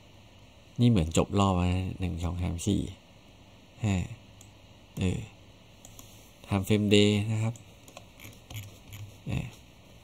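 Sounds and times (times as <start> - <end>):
man speaking: 9.2 - 9.6.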